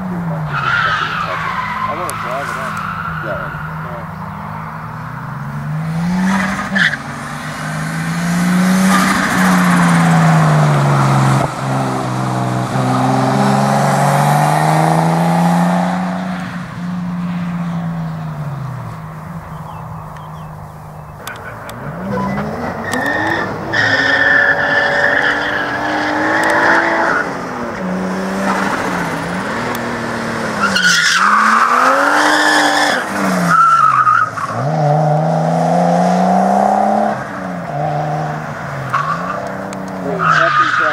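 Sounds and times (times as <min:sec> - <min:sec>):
tyres squealing: 0:00.0 - 0:16.6, 0:17.9 - 0:34.9, 0:38.7 - 0:40.9
car engine revving: 0:00.0 - 0:40.9.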